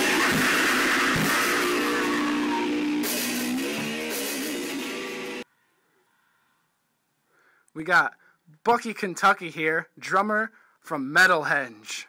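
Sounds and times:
drum hits: 0.0 - 5.4
heavy metal band playing: 0.0 - 5.4
ringing guitar chord: 0.0 - 5.4.

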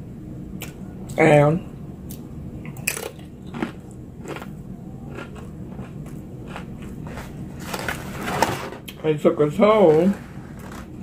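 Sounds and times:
chewing crisp chip: 2.1 - 7.9.

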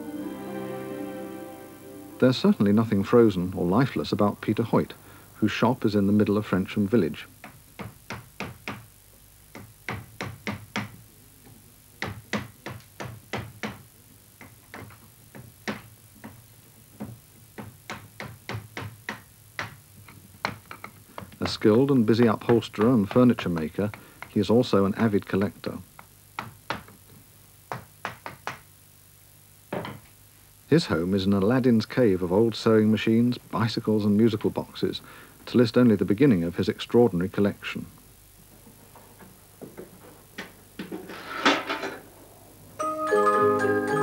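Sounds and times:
hammer tapping tacks: 17.0 - 21.6.

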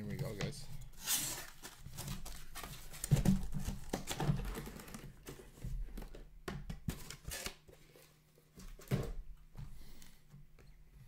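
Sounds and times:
cardboard boxes knocking and scraping: 1.9 - 7.1.

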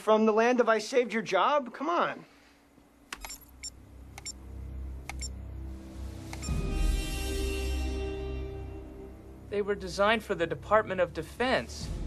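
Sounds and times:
short electronic clicks: 3.1 - 4.4, 5.1 - 5.4, 6.3 - 6.6.

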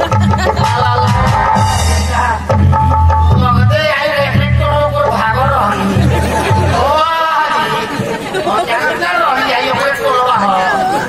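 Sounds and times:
crowd chatter: 0.0 - 11.0
man's voice over loudspeaker: 3.2 - 11.0.

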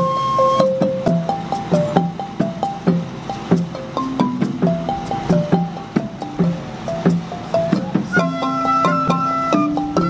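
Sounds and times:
marimba melody: 0.0 - 10.0.

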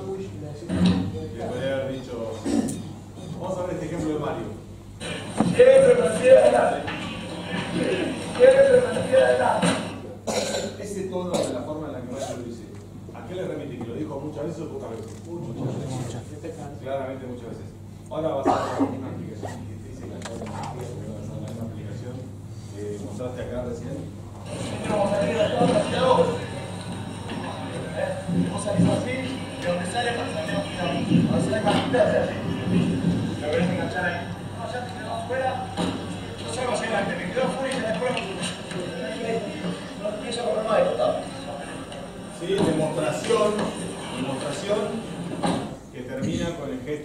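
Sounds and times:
indistinct speech in reverberant room: 0.0 - 47.0
steady low hum: 0.0 - 47.0
man talking: 5.4 - 9.8, 10.7 - 26.8, 27.4 - 45.2, 45.9 - 47.0.

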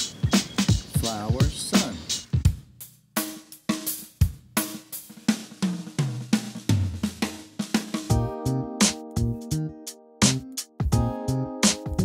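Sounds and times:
drum beat: 0.0 - 9.4, 10.2 - 12.0
bass line: 8.1 - 12.0
held chords: 8.1 - 12.0.

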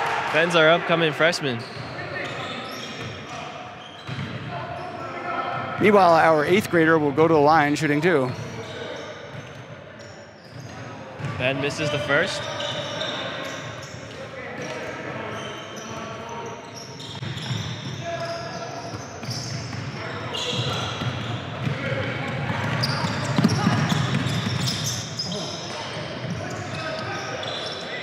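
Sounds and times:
crowd chatter in a large hall: 0.0 - 28.0
basketball bouncing on hardwood: 22.4 - 24.7.

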